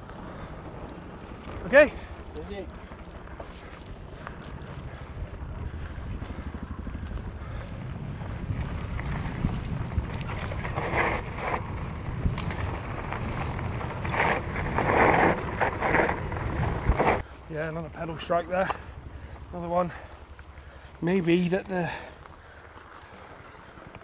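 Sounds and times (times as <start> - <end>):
mountain bike tyres rumbling on dirt: 0.0 - 24.0
wind on microphone: 3.8 - 17.2
bike scrapes and knocks: 8.6 - 17.2.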